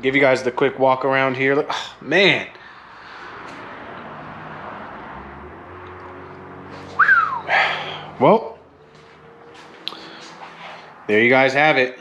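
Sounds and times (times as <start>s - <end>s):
breathy rush: 2.5s - 5.4s, 6.8s - 8.2s
short whistle: 6.9s - 8.0s.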